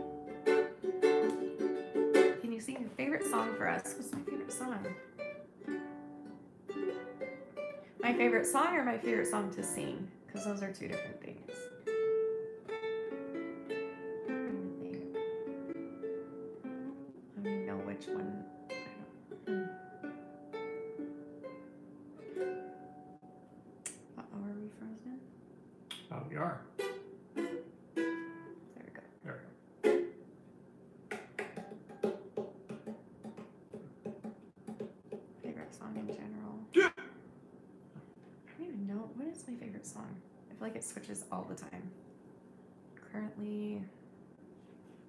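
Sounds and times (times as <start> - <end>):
ukulele playing: 0.0 - 23.5, 26.7 - 28.7, 29.8 - 30.3, 31.1 - 35.3.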